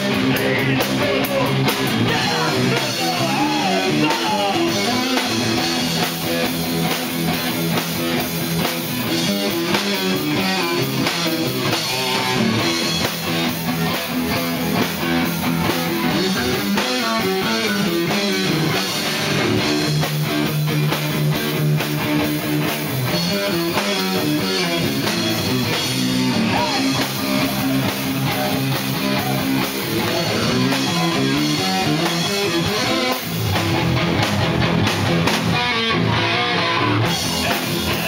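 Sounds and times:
heavy metal band playing: 0.0 - 38.0.

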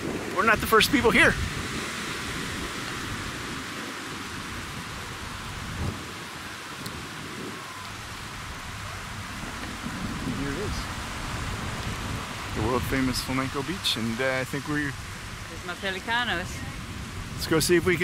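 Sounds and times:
surf breaking on sandy beach: 0.0 - 18.0
wind rumbling on microphone: 0.0 - 18.0.

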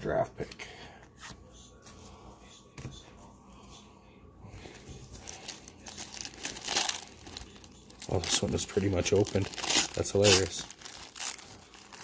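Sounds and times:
foil wrapper crinkling: 5.2 - 12.0.

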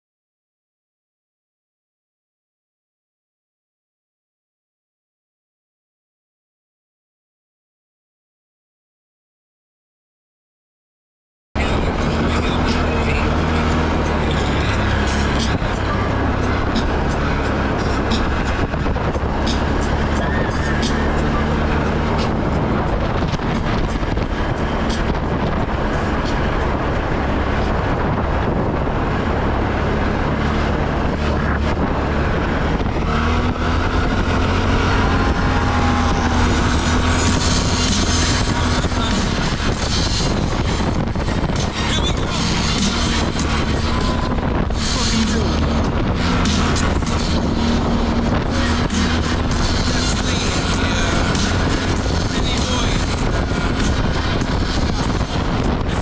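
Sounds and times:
atv engine running: 11.6 - 56.0.

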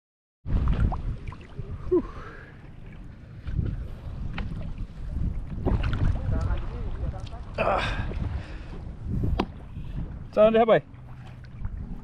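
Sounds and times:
sea water sloshing around legs: 0.5 - 12.0
wind buffeting microphone: 0.5 - 12.0.

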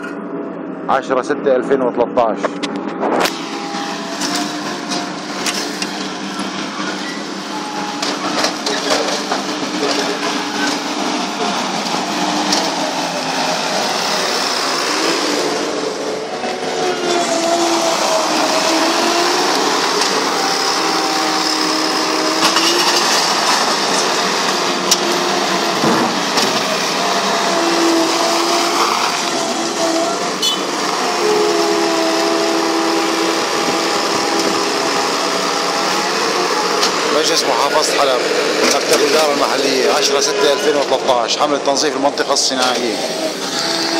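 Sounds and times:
loader engine running loudly: 0.0 - 43.9.

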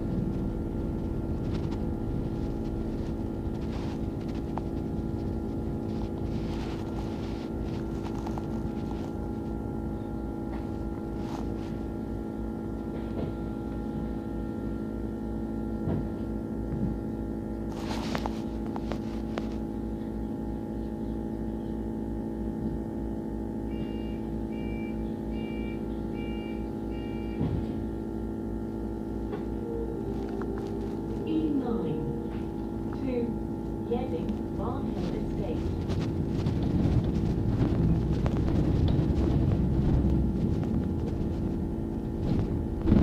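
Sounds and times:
bus drivetrain hum: 0.0 - 43.0.

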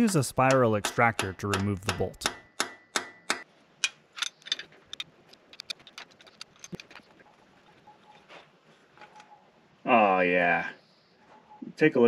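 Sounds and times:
metal tool clicks and taps: 0.4 - 7.0.

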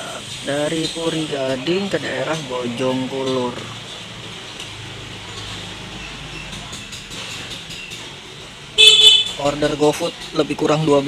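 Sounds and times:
background traffic noise: 0.0 - 11.0
vehicle horn beep: 8.8 - 9.4.

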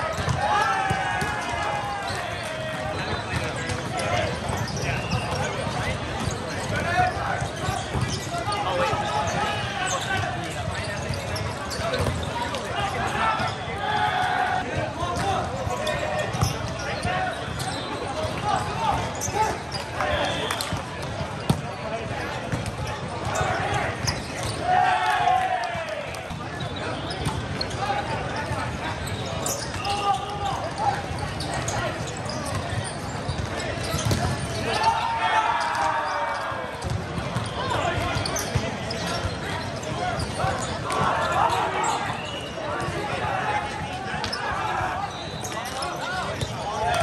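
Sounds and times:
players calling and shouting: 0.0 - 47.0.

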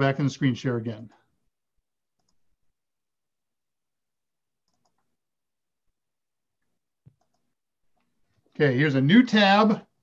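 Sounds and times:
computer mouse clicks: 2.2 - 2.4, 4.6 - 5.1, 7.0 - 8.1.

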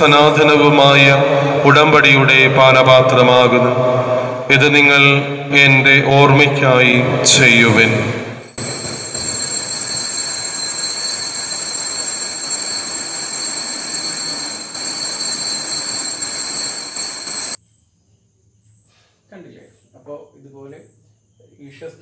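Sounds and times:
bells ringing: 8.4 - 17.6.

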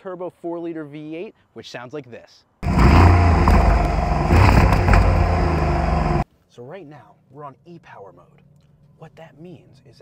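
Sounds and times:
car exhaust running loudly: 2.6 - 6.2.

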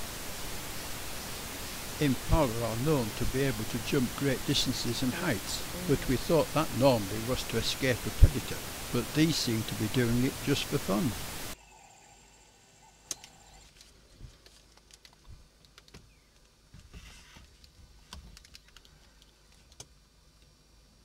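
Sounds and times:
faint hiss: 0.0 - 21.0
narrator speaking: 2.0 - 11.3.

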